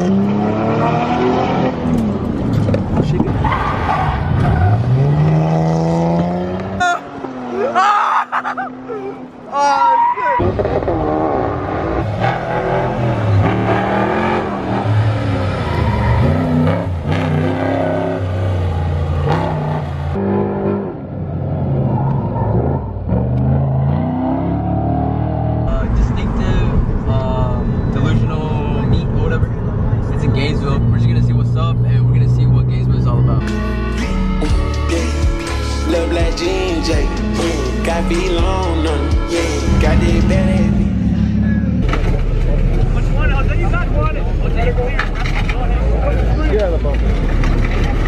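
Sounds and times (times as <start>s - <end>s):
car engines revving: 0.0s - 48.0s.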